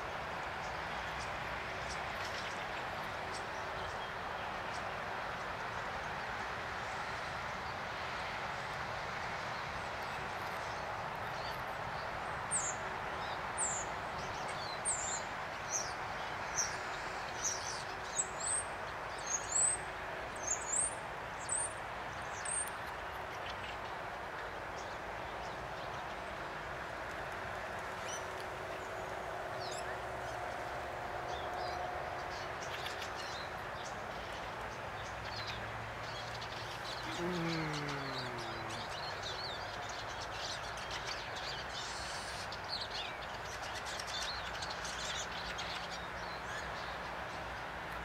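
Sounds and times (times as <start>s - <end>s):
steady background noise: 0.0s - 48.0s.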